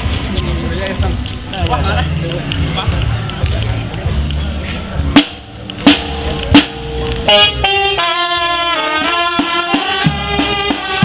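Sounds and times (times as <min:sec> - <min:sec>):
drum strikes: 0:05.0 - 0:11.0
brass band chords: 0:05.2 - 0:11.0.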